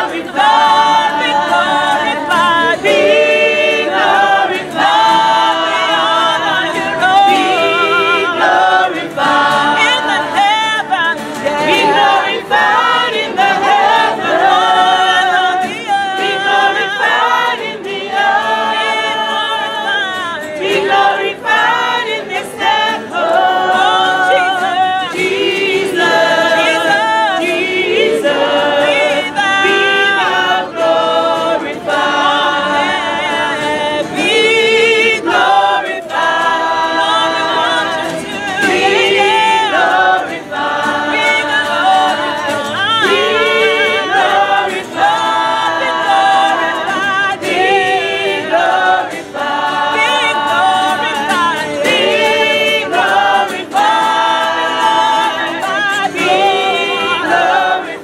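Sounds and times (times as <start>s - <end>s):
choir singing a carol: 0.0s - 58.0s.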